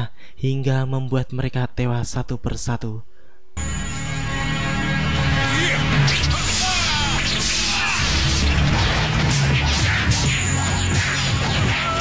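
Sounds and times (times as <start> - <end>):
background music: 3.6 - 12.0.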